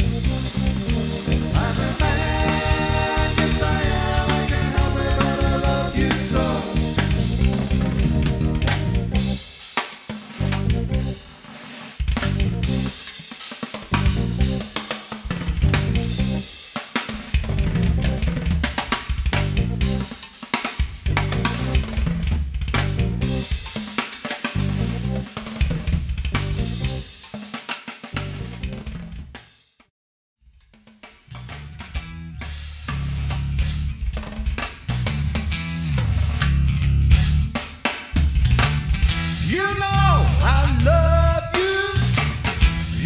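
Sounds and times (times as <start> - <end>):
live band with drum kit: 0.0 - 29.7, 30.7 - 43.0.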